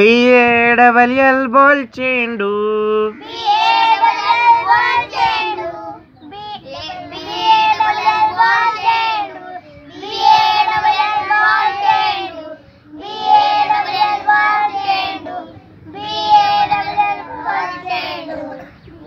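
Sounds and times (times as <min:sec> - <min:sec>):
young children singing: 0:03.1 - 0:19.0.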